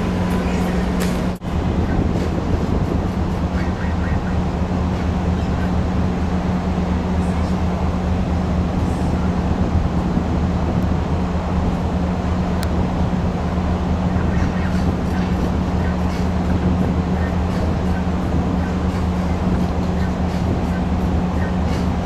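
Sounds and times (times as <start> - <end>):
ship machinery low hum: 0.0 - 22.0.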